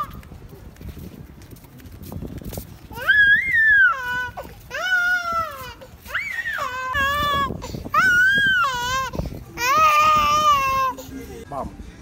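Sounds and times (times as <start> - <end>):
footsteps on pavement: 0.0 - 10.9.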